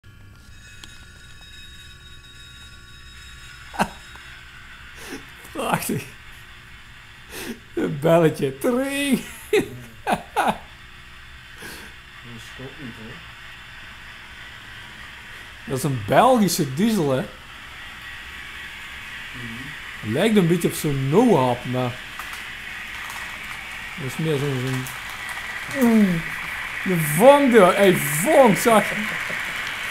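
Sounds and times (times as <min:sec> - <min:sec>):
model train motor hum: 0:00.1 - 0:29.9.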